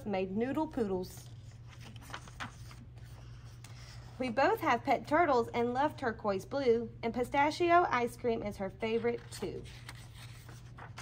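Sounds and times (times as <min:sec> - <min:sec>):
low room hum: 0:00.0 - 0:11.0
paper page turning: 0:01.2 - 0:04.2, 0:08.8 - 0:11.0.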